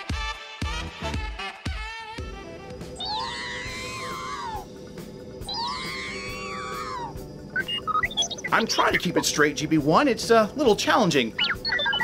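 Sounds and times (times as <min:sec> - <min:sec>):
steady low drone: 0:02.2 - 0:11.6
swooping electronic tone: 0:02.9 - 0:09.4, 0:11.2 - 0:12.0.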